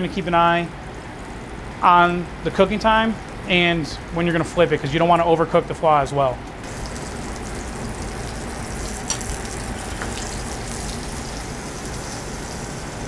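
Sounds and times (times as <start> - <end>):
meat sizzling in a pan: 6.6 - 13.0.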